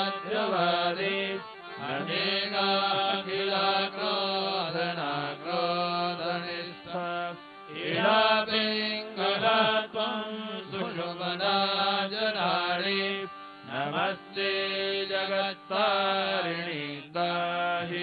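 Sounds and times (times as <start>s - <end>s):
person singing melodic chant: 0.0s - 18.0s.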